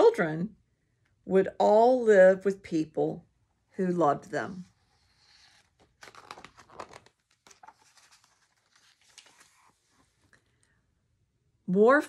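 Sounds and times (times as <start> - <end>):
paper page turning: 4.7 - 10.5.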